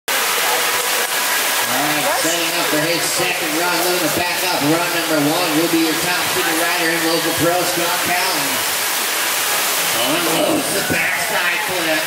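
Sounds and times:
water rushing steadily: 0.1 - 12.0
man's voice: 1.7 - 8.6, 9.9 - 12.0.

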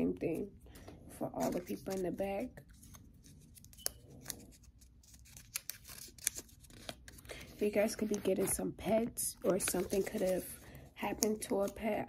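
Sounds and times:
paper crinkling and clicking: 1.4 - 8.6, 9.4 - 12.0.

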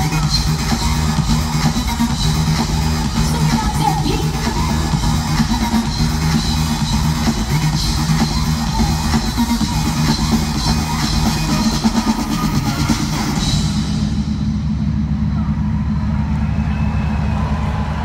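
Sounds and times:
loud live dance-pop music: 0.0 - 14.6.

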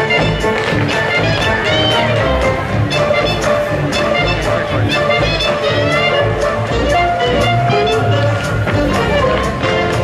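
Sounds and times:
loud recorded music: 0.0 - 10.0
tap shoes tapping in unison: 0.0 - 10.0.

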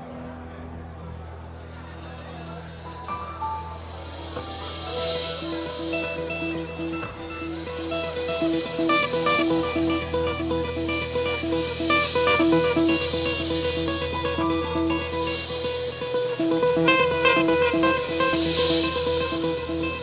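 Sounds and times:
steady low drone: 0.0 - 20.0
electric guitar picking: 2.6 - 20.0
rock band playing: 4.0 - 20.0.

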